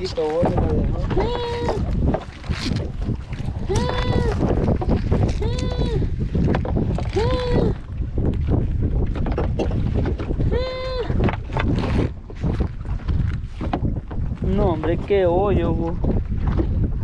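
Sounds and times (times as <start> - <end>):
net and floats knocking on hull: 0.0 - 10.5, 11.1 - 17.0
wind buffeting microphone: 0.0 - 17.0.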